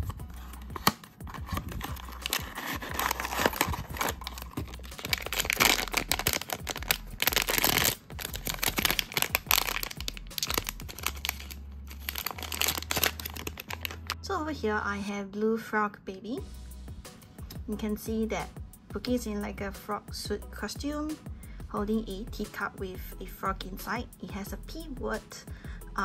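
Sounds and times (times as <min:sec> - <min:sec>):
cardboard box being opened: 0:00.0 - 0:14.2
foil bag crinkling and tearing: 0:00.8 - 0:14.2.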